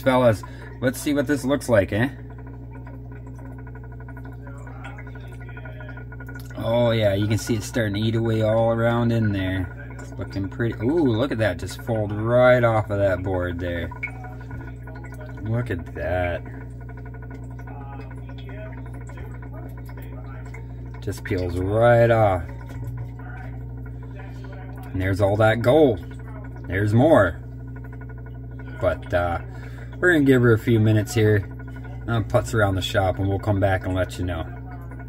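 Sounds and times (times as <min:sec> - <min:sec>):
rapid even ticking: 0:00.0 - 0:35.0
small electric motor humming: 0:00.0 - 0:35.0.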